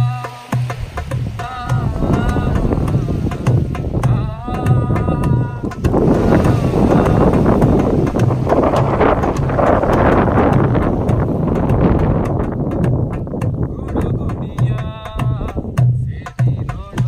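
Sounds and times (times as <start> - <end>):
person singing: 0.0 - 11.1, 13.6 - 17.0
hand drum rhythm: 0.0 - 17.0
wind buffeting microphone: 0.0 - 17.0.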